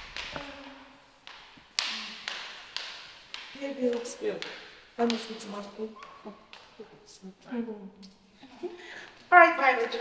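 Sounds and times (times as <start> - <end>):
footsteps on tiled floor: 0.0 - 10.0.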